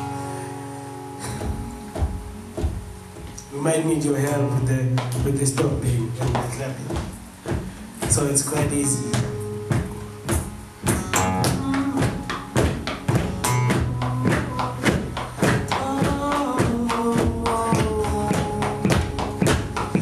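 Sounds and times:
acoustic guitar chords: 0.0s - 20.0s
cajon beat: 1.0s - 20.0s.

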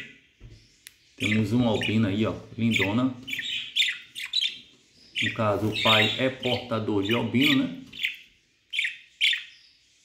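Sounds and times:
budgerigar chirps: 1.2s - 9.7s.

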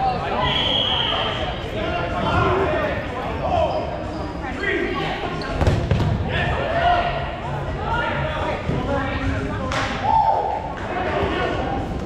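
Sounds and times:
dodgeballs thudding: 5.6s - 6.3s.

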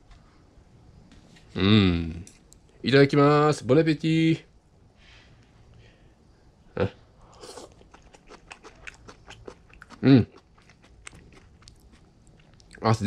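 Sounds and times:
person chewing crunchy food: 7.3s - 12.9s.

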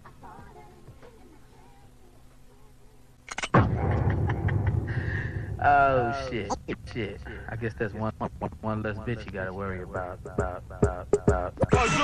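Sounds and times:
faint hum: 0.0s - 12.0s
loud rumbling noise: 3.6s - 6.0s.

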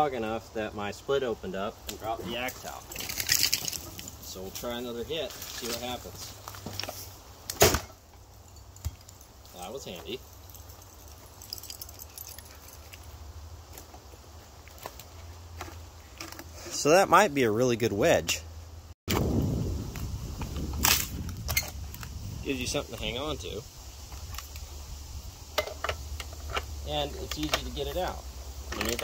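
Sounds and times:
sharp wood crack: 7.4s - 8.0s, 19.1s - 22.2s
axe chopping into log: 7.5s - 8.0s.

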